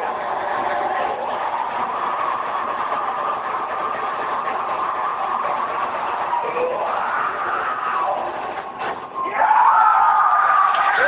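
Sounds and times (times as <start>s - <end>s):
crowd: 0.0s - 11.0s.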